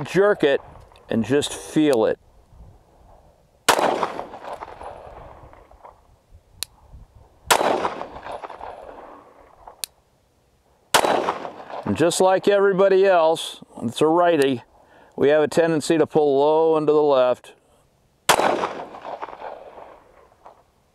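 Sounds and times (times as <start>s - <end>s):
pistol shots with echo: 3.7s - 5.4s, 7.5s - 9.3s, 10.9s - 12.1s, 18.3s - 20.1s
faint sharp clicks: 6.6s - 6.8s.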